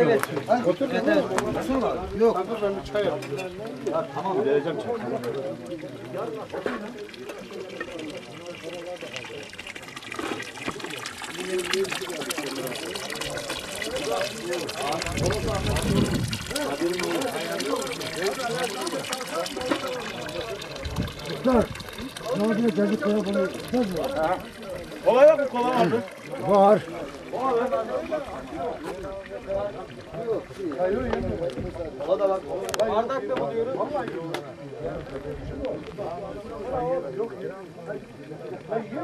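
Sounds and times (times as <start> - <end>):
water running: 0.0 - 34.0
men talking: 0.0 - 39.0.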